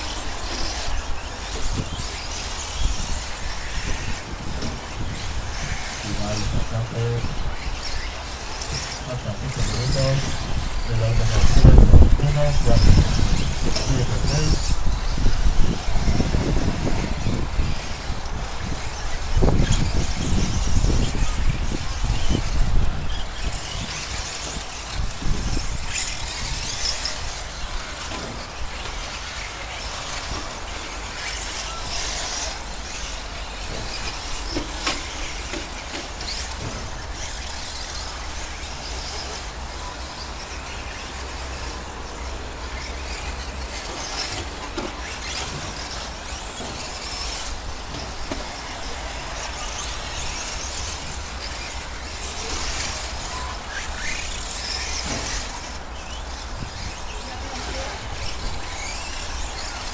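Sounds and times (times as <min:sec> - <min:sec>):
rc trucks high whirring: 0:00.0 - 0:59.9.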